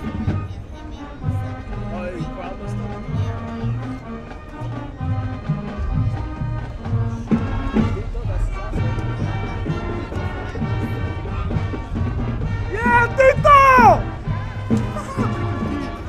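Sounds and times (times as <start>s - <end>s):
drums: 0.0s - 16.0s
marching band playing: 0.0s - 16.0s.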